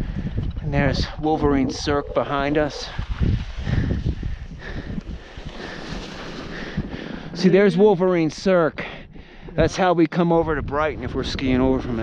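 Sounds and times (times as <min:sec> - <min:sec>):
wind buffeting microphone: 0:00.0 - 0:12.0
skis sliding on snow: 0:05.3 - 0:06.7.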